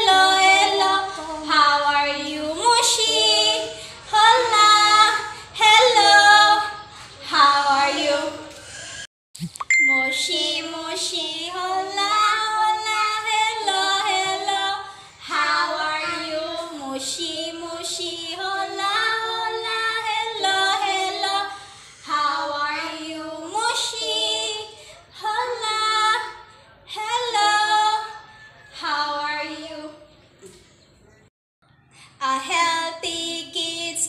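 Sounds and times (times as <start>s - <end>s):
woman and girl singing: 0.0s - 8.6s, 9.9s - 28.2s, 28.8s - 30.1s, 32.2s - 34.0s.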